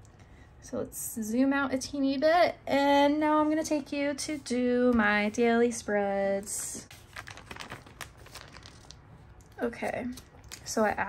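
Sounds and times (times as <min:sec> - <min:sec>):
paper pages turning: 0:06.8 - 0:10.7.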